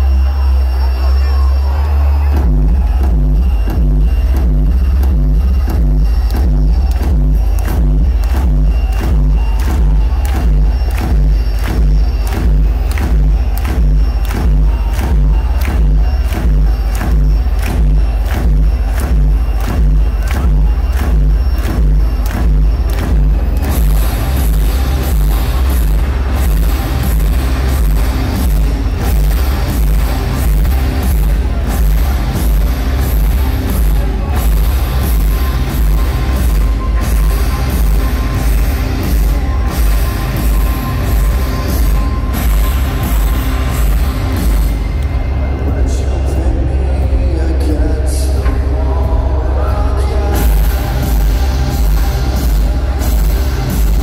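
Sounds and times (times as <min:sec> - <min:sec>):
loud electronic music: 0:00.0 - 0:54.0.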